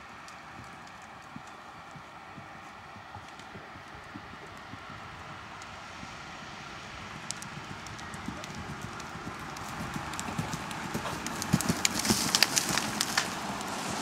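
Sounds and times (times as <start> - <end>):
horse hoofbeats on dirt: 0.0 - 14.0.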